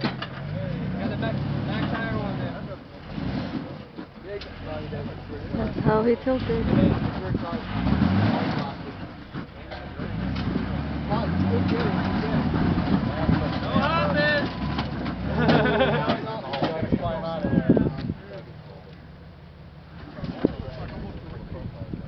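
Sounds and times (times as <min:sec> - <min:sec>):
off-road vehicle engine: 0:00.0 - 0:22.0
voices calling out: 0:00.0 - 0:22.0.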